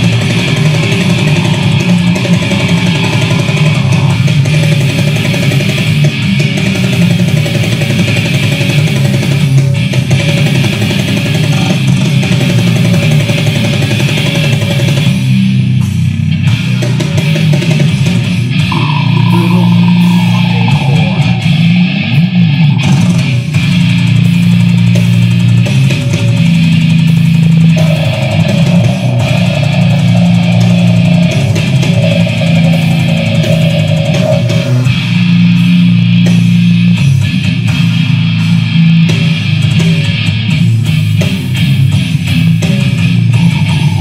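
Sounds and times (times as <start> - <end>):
band playing loud grindcore: 0.0 - 44.0
heavily distorted guitar and bass: 0.0 - 44.0.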